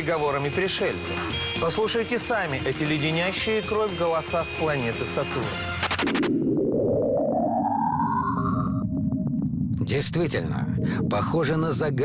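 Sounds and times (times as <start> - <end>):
eerie rising whistling tone: 6.3 - 9.4.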